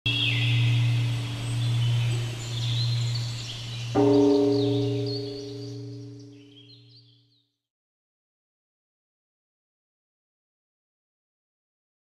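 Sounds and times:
birds chirping faintly: 0:00.1 - 0:07.2
large bell ringing: 0:00.2 - 0:07.0.

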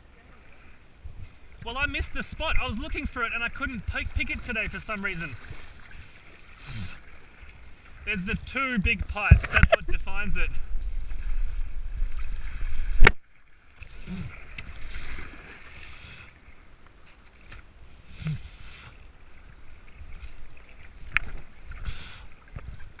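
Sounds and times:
water rushing around kayak hull: 0:00.0 - 0:23.0
hull and paddle scraping grass: 0:13.8 - 0:16.4.

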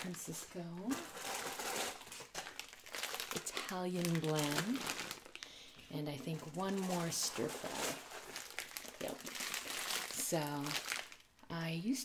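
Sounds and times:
plastic bag crinkling: 0:00.0 - 0:11.5.

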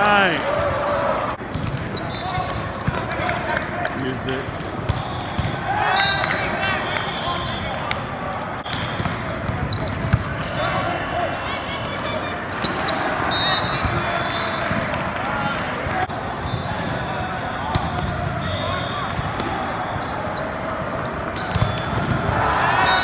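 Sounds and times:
shoe squeaks on court: 0:01.9 - 0:05.4, 0:09.5 - 0:10.3
people shouting: 0:05.0 - 0:07.3.

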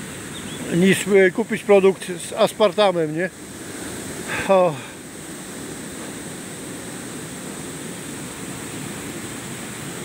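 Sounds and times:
stream rushing over a weir: 0:00.0 - 0:10.0.

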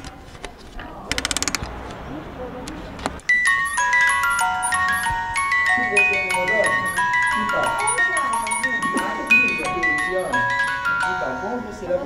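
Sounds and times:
music box chiming tune: 0:03.3 - 0:12.0.

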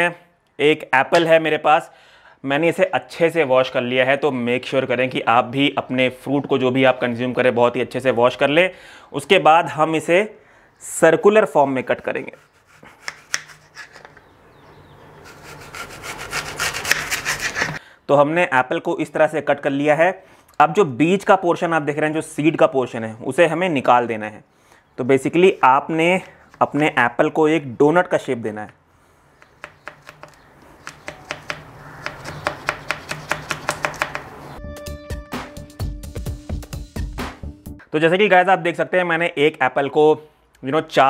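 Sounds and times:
knife sawing through apple: 0:12.2 - 0:14.0, 0:15.2 - 0:17.8
knife tapping on plastic cutting board: 0:29.4 - 0:34.3.

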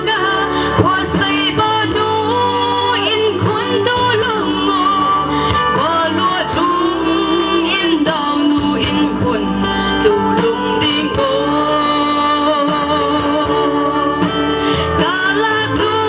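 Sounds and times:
instrumental backing: 0:00.0 - 0:16.0
woman singing into a microphone: 0:00.0 - 0:16.0.

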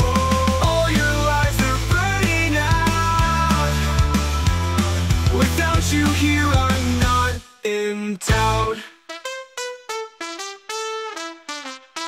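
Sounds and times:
solo trumpet-like brass notes: 0:09.1 - 0:12.0.

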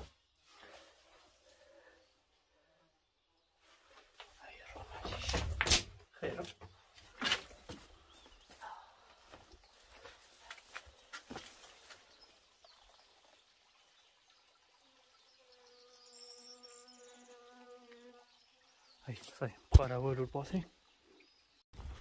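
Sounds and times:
flying insect buzzing: 0:15.3 - 0:18.4.

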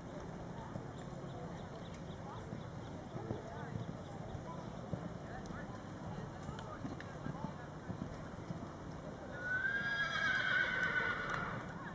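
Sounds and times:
horse whinnying: 0:09.4 - 0:11.6.

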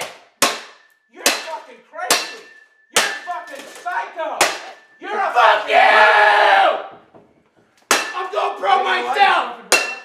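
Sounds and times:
bat striking console: 0:00.0 - 0:05.0, 0:07.2 - 0:08.4, 0:09.7 - 0:10.0
man shouting angrily: 0:05.0 - 0:06.8, 0:08.2 - 0:09.7.

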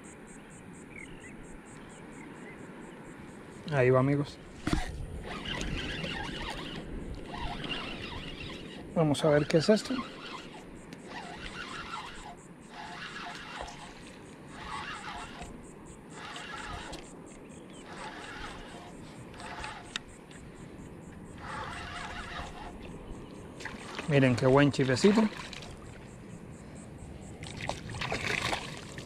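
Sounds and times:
spinning reel being cranked: 0:04.6 - 0:20.4, 0:21.3 - 0:25.2.

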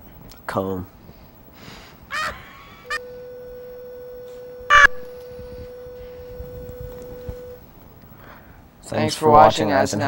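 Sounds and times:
steady single-pitched hum: 0:01.0 - 0:08.8
high squawk: 0:02.1 - 0:03.2.

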